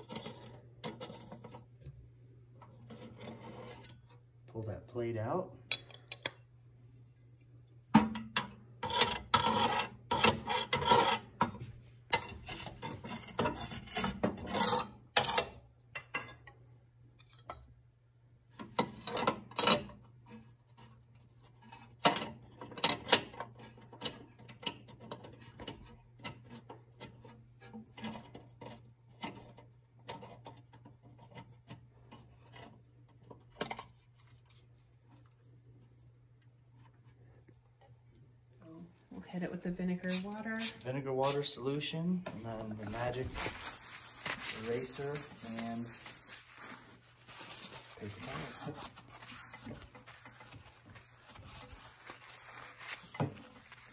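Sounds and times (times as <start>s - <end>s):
scraping ash in metal stove: 42.9s - 53.9s.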